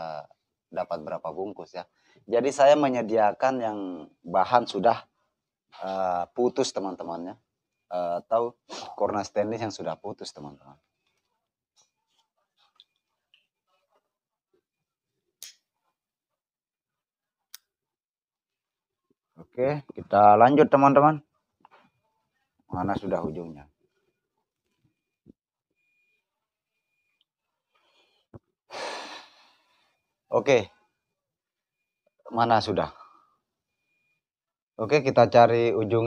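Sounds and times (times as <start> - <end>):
faint clicks and rustles of handling wire: 10.7 - 14.8
man exhaling breath: 28.7 - 29.6.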